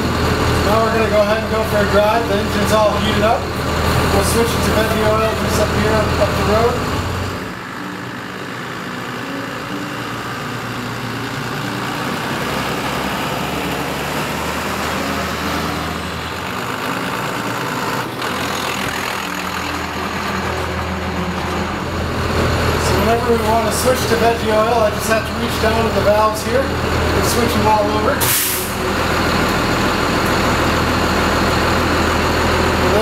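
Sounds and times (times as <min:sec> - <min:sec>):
diesel bus engine running: 0:00.0 - 0:33.0.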